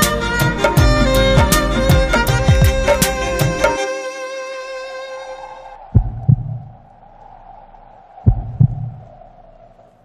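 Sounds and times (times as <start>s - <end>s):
bowed-string music: 0.0s - 5.8s
heartbeat thumps: 0.8s - 3.6s, 5.9s - 6.8s, 8.2s - 9.1s.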